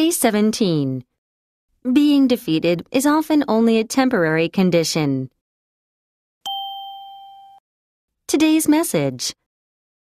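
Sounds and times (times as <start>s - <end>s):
ding chime: 6.4s - 7.6s.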